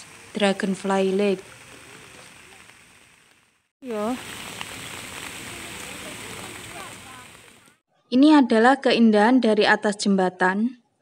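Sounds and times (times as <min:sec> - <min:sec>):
rain falling: 0:00.0 - 0:07.8.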